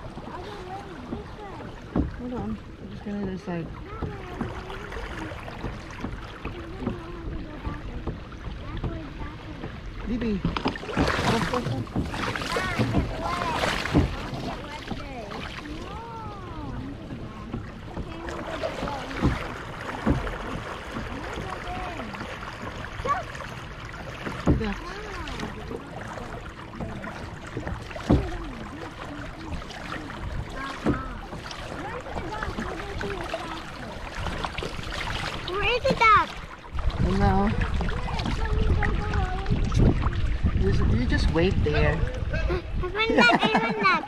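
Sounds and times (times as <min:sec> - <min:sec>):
water sloshing along hull: 0:00.0 - 0:44.0
quiet talking: 0:00.2 - 0:23.4, 0:24.3 - 0:36.4
sharp knocks: 0:10.4 - 0:15.0.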